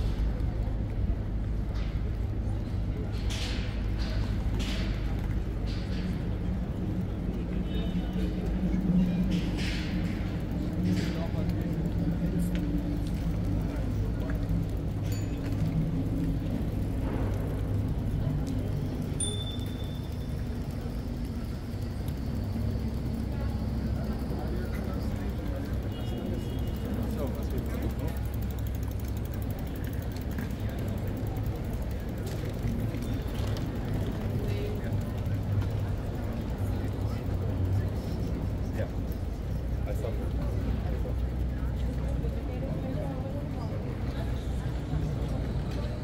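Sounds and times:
passers-by talking indistinctly: 0.0 - 46.0.

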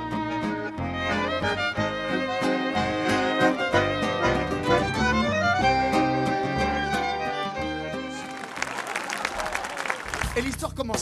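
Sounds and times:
violin: 0.0 - 8.5
button accordion: 0.0 - 8.6.

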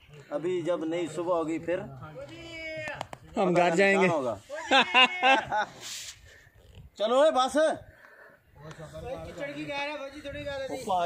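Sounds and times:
short breathy hiss: 5.7 - 6.6.

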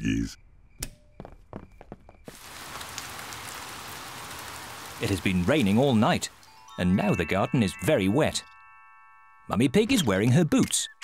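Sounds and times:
cartoon rain: 2.3 - 6.6.

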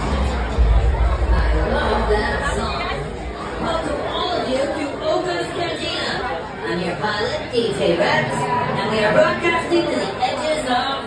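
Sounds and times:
crowd chatter in echoing room: 0.0 - 11.0.

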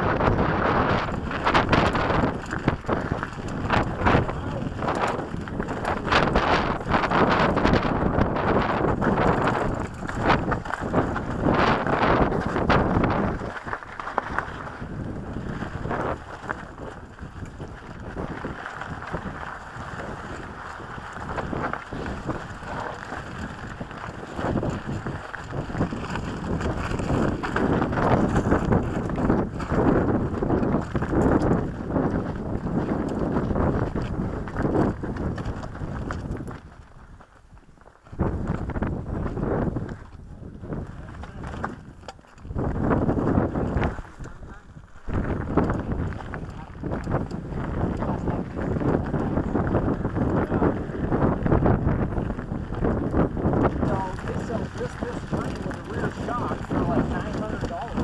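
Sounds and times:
bike rattling and knocking: 0.0 - 58.0
wind buffeting microphone: 0.0 - 58.0
tyres crunching on gravel: 1.2 - 38.0.

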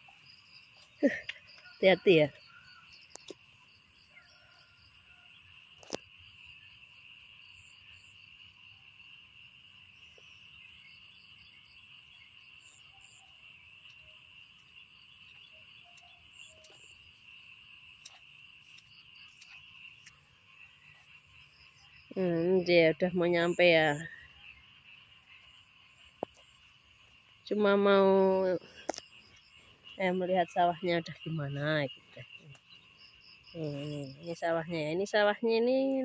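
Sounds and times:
frogs and insects calling: 0.0 - 36.0.

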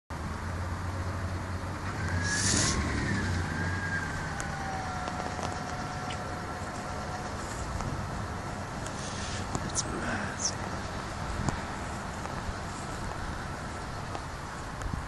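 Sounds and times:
car engine idling: 0.2 - 15.0
faint whine: 0.2 - 15.0
short hiss: 2.2 - 2.8.

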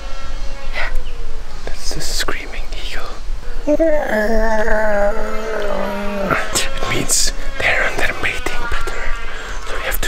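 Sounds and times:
people whispering: 1.6 - 10.0.

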